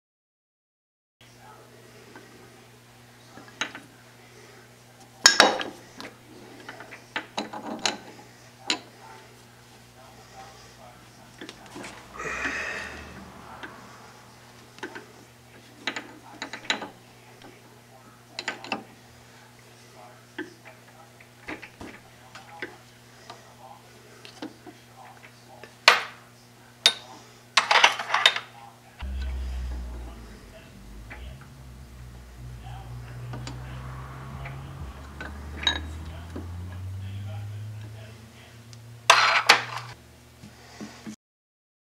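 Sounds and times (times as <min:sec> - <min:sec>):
steady low hum: 0:09.6 - 0:15.7, 0:29.0 - 0:39.1.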